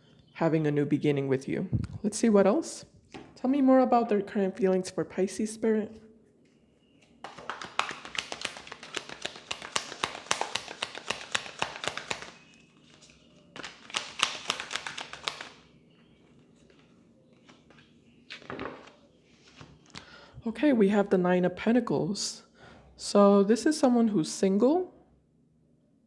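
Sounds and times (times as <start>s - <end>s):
cards being shuffled: 7.2s - 15.6s.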